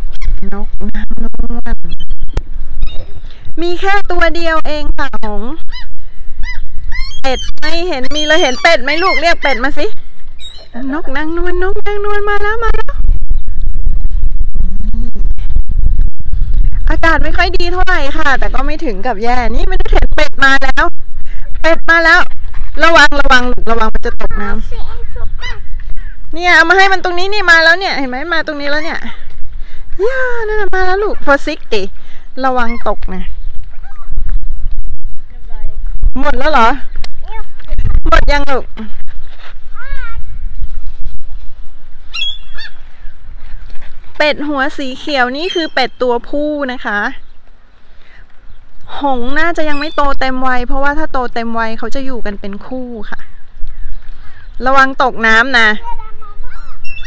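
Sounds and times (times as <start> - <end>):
wind buffeting microphone: 0.0 - 57.0
gull calls: 5.6 - 9.7, 25.1 - 25.9, 42.1 - 43.1, 55.9 - 57.0.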